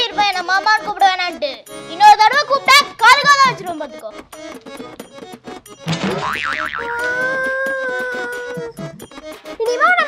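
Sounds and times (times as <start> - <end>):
cartoon slap hit: 5.9 - 7.4
wobbling boing tone: 5.9 - 7.4.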